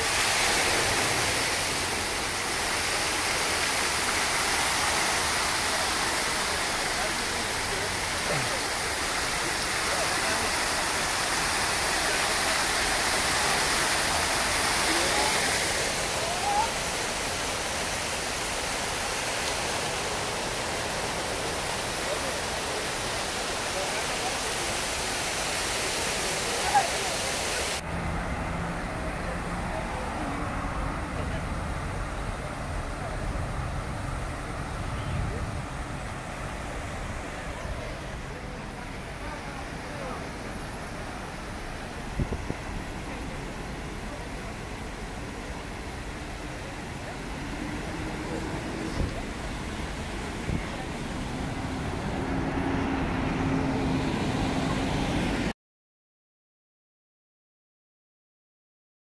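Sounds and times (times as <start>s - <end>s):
fountain water splashing: 0.0s - 55.5s
street traffic: 0.0s - 55.5s.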